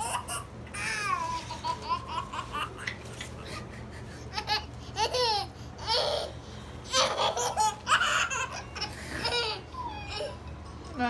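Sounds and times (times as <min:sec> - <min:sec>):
baby laughing: 0:00.0 - 0:11.0.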